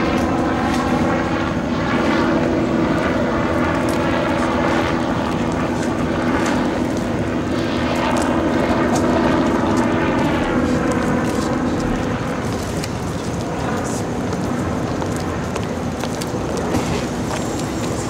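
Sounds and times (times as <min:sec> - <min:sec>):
airplane engines droning overhead: 0:00.0 - 0:18.0.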